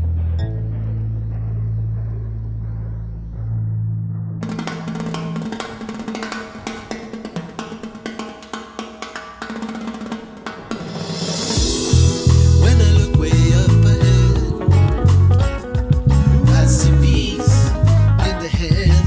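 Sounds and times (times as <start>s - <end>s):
bass notes: 0.0s - 4.6s, 11.6s - 19.0s
drum kit with snare rolls: 4.4s - 19.0s.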